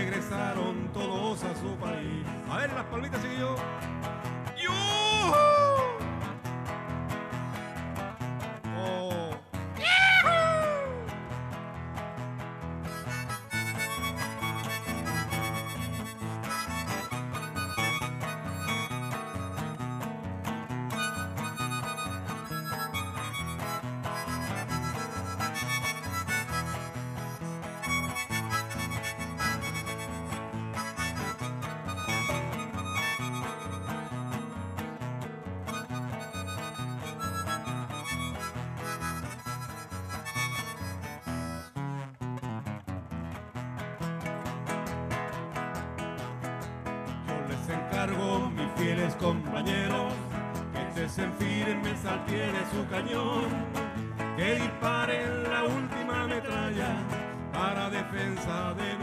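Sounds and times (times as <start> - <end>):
acoustic guitar: 0.0 - 59.0
harmonica: 7.3 - 8.4, 9.8 - 59.0.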